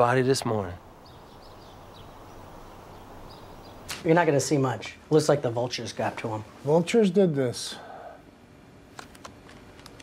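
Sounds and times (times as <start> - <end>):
faint high bird chirps: 1.0 - 3.9.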